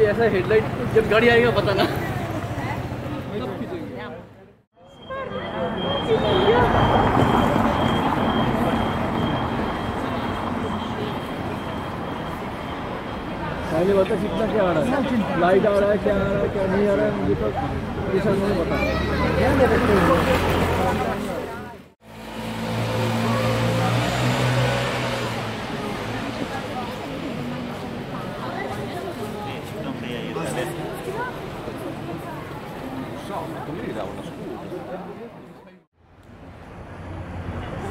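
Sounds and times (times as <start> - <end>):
street noise: 0.0 - 37.9.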